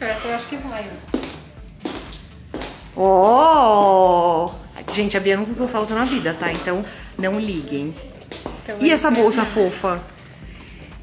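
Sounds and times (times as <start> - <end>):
background music: 0.0 - 11.0
footsteps on wooden floor: 0.2 - 10.8.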